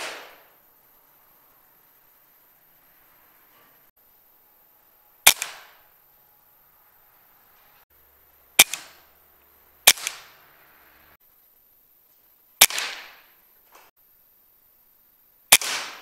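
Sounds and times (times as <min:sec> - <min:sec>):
air rifle shots: 0:00.0 - 0:00.6, 0:05.2 - 0:05.8, 0:08.6 - 0:09.1, 0:09.8 - 0:10.4, 0:12.6 - 0:13.4, 0:15.5 - 0:16.0.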